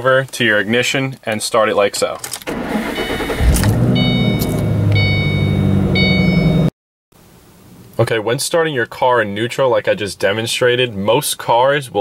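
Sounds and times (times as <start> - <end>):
car engine starting and idling: 2.4 - 6.7
electronic chime: 2.9 - 6.7.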